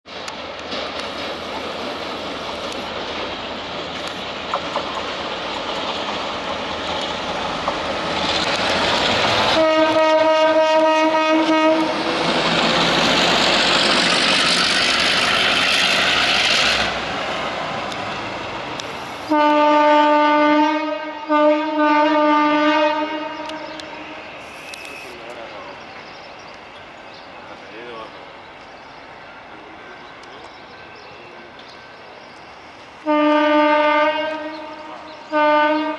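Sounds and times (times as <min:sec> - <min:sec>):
diesel locomotive engine: 0:00.1 - 0:35.9
locomotive horn: 0:09.4 - 0:12.0, 0:19.2 - 0:25.1, 0:33.0 - 0:35.9.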